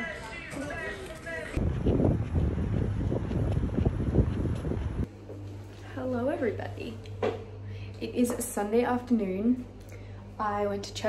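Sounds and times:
wind buffeting microphone: 1.6 - 5.1.

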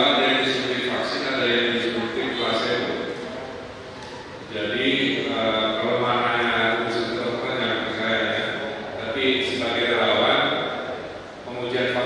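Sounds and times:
man speaking into microphones: 0.0 - 3.5, 4.4 - 12.0.

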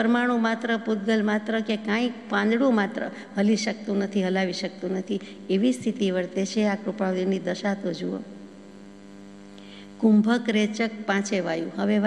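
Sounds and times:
steady electrical hum: 0.0 - 12.0.

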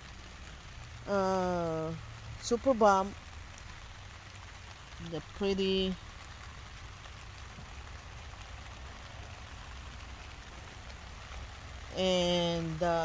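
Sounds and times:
steady rain falling: 0.0 - 13.0.

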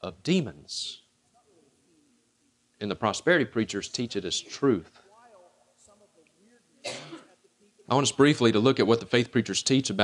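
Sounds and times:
person clearing throat: 6.8 - 7.3.

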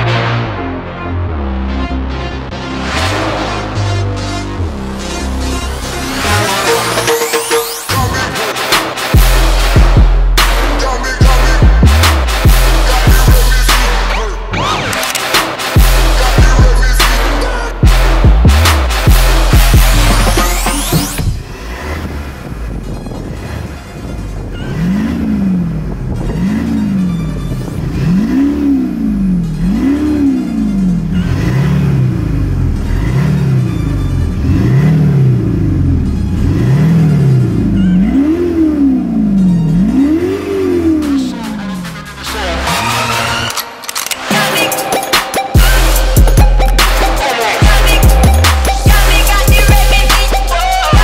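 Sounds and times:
car engine revving: 0.0 - 51.0
music: 0.0 - 51.0.

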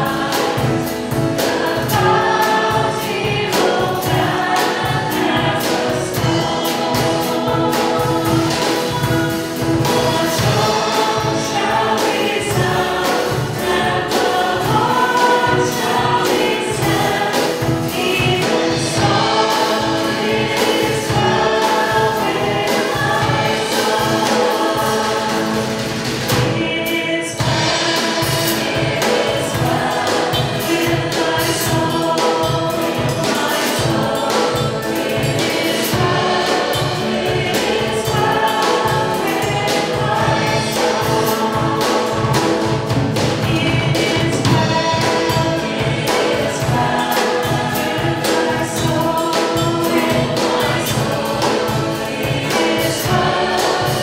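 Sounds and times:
drum kit: 0.0 - 54.0
group singing a hymn: 0.0 - 54.0
guitars: 0.0 - 54.0
piano: 0.0 - 54.0
upright bass: 0.0 - 54.0.

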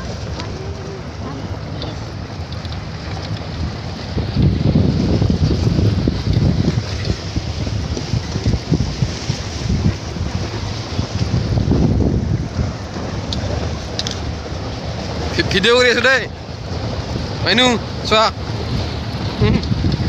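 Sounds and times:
vehicle rumble on dirt track: 0.0 - 20.0
wind buffeting microphone: 0.0 - 20.0.

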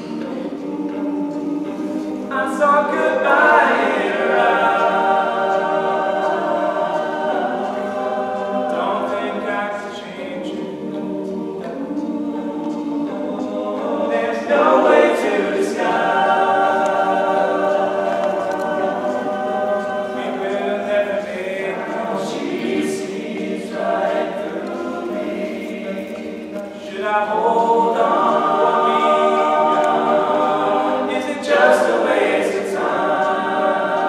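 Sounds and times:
male a cappella group singing: 0.0 - 34.0.

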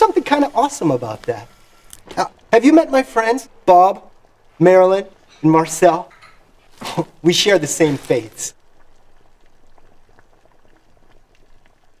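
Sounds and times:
small pops and crackles: 0.0 - 2.6, 5.1 - 12.0.

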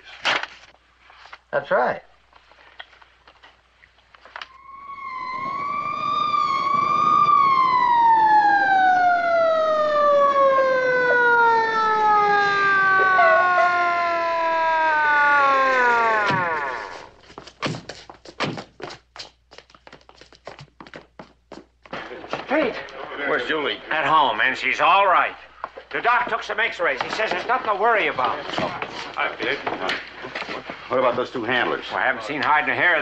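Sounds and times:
police siren winding down: 4.4 - 17.2.

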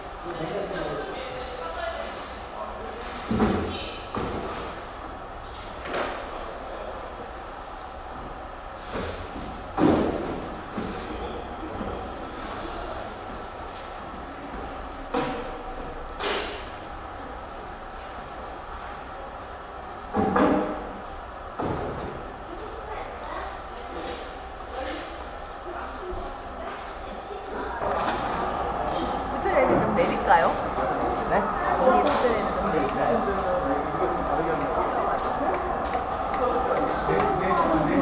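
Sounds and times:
indistinct chatter: 22.4 - 38.0
brewing equipment knocking: 27.8 - 38.0.

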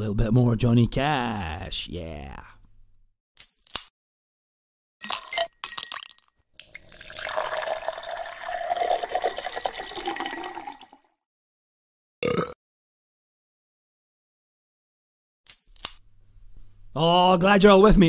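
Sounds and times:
ice clinking into a glass: 5.0 - 11.0
drink pouring into a glass: 5.0 - 11.1.

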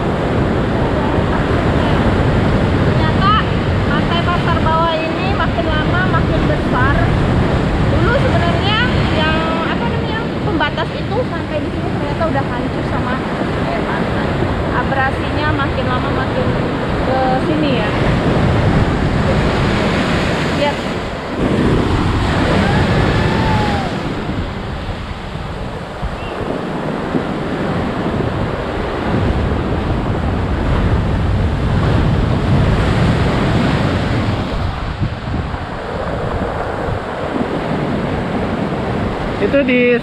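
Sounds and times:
waves crashing on rocks: 0.0 - 40.0
wind buffeting microphone: 0.0 - 40.0.

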